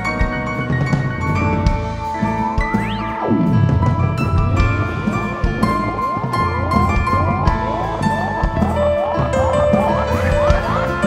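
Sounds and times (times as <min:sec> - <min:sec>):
live band playing: 0:00.0 - 0:11.0
lead line rising pitch slides: 0:00.7 - 0:11.0.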